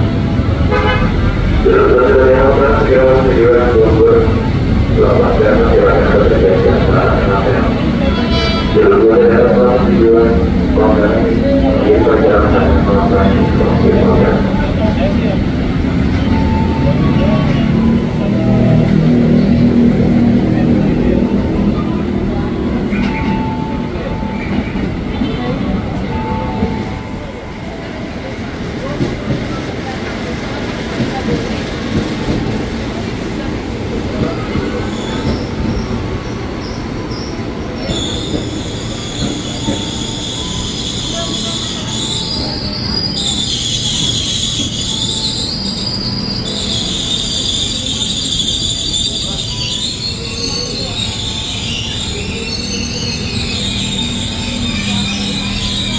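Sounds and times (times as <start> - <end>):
train rumbling: 0.0 - 55.9
high wavering brake squeal: 16.1 - 19.1, 34.6 - 55.9.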